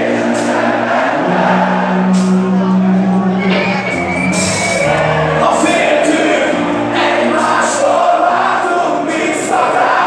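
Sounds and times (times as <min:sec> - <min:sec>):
distorted electric guitars: 0:00.0 - 0:10.0.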